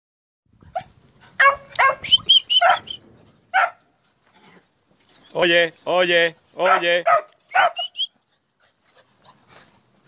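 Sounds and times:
puppies barking and yipping: 0:00.7 - 0:05.4, 0:06.6 - 0:10.0.

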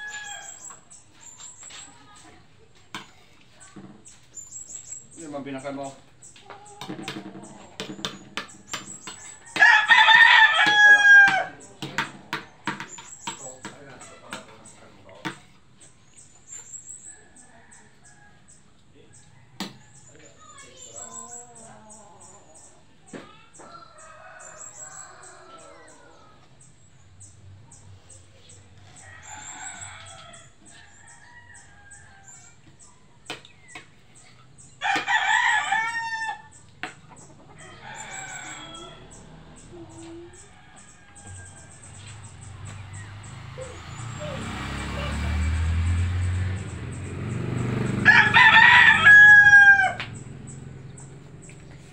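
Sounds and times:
rooster crowing: 0:00.0 - 0:00.8, 0:09.2 - 0:12.0, 0:23.7 - 0:26.4, 0:29.0 - 0:32.6, 0:34.8 - 0:36.6, 0:37.6 - 0:42.1, 0:47.8 - 0:50.3.

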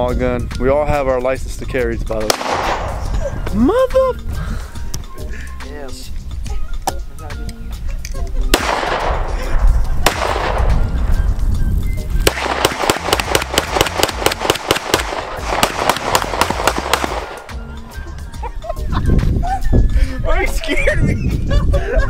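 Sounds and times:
handgun shots with echo: 0:02.3 - 0:03.1, 0:08.5 - 0:09.4, 0:10.0 - 0:10.8, 0:12.2 - 0:17.5.

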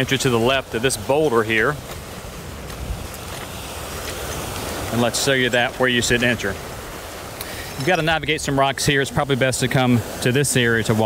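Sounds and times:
surf breaking on rocky shore: 0:00.0 - 0:11.0.

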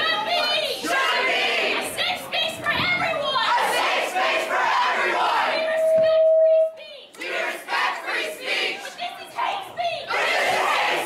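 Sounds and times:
crowd shouting in unison: 0:00.0 - 0:02.1, 0:03.4 - 0:06.0, 0:07.2 - 0:09.0, 0:10.1 - 0:11.0.

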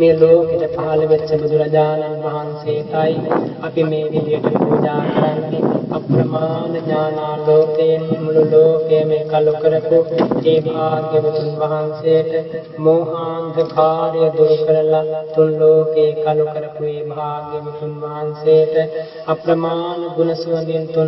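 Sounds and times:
person chanting verses: 0:00.0 - 0:21.0
steady held drone: 0:00.0 - 0:21.0.

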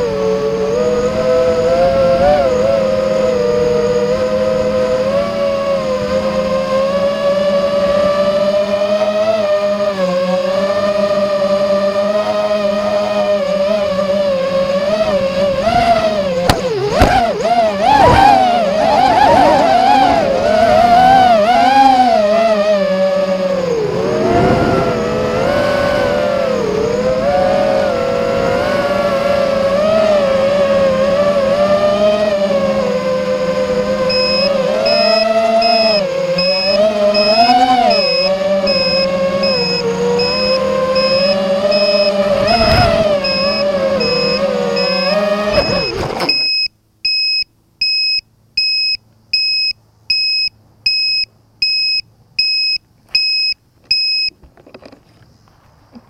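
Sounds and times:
drone motors whining: 0:00.0 - 0:47.2
high electronic beeper: 0:34.1 - 0:54.3.

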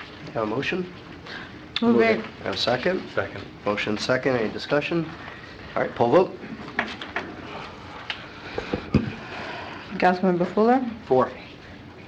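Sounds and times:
chamber background hum: 0:00.0 - 0:12.0.

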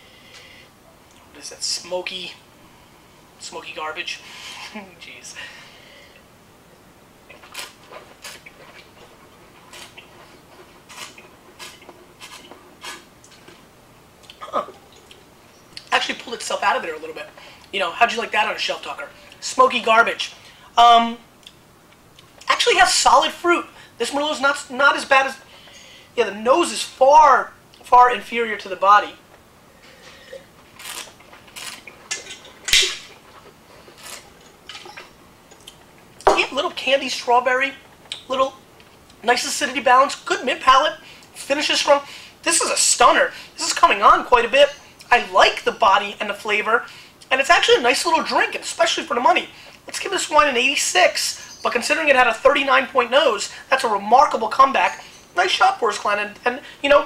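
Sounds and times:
wine slurping and swishing: 0:07.3 - 0:13.1
mouth clicks and wet smacks: 0:14.2 - 0:15.9
sipping wine: 0:14.2 - 0:16.0.

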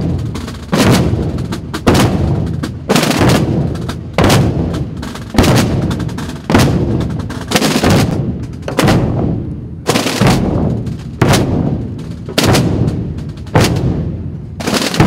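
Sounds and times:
side drums beating in unison: 0:00.0 - 0:15.0.

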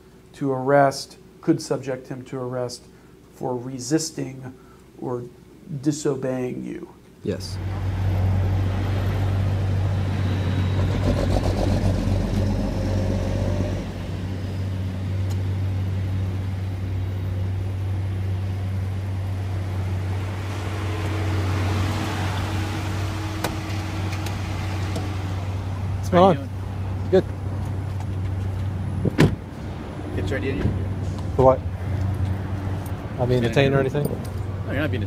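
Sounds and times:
road noise: 0:07.4 - 0:35.0.

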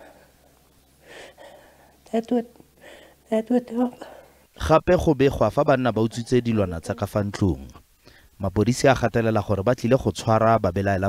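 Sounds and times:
woman breathing in: 0:01.0 - 0:02.0, 0:02.8 - 0:03.2
woman speaking: 0:02.1 - 0:02.6, 0:03.2 - 0:04.2.

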